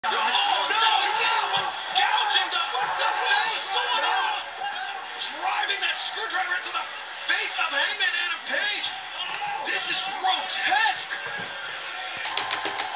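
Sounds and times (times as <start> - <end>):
arena crowd noise: 0.0 - 12.9
excited voices on tv: 0.0 - 12.9.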